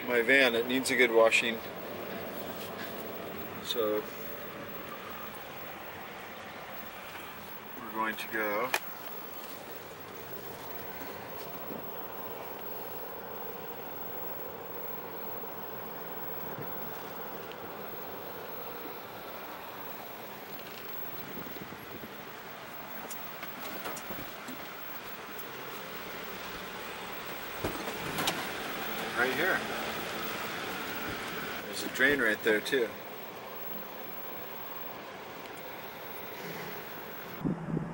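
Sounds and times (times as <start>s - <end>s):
van engine and tyre noise: 0.0s - 37.9s.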